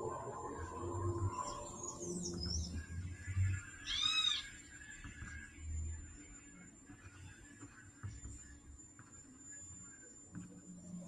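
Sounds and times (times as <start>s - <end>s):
bird chirping: 1.2s - 3.2s, 3.8s - 4.6s.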